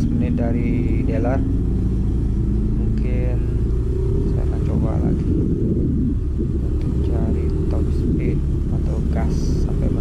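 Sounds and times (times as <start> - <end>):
scooter engine rumbling: 0.0 - 10.0
wind buffeting microphone: 0.0 - 10.0.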